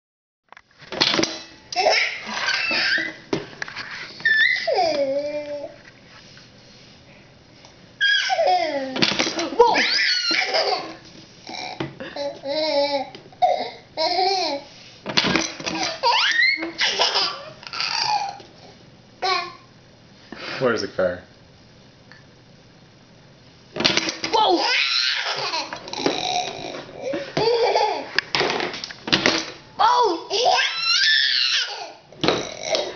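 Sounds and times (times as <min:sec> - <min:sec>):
baby giggling and laughing: 0:01.8 - 0:03.2, 0:08.1 - 0:09.0, 0:15.8 - 0:18.4, 0:24.6 - 0:28.1.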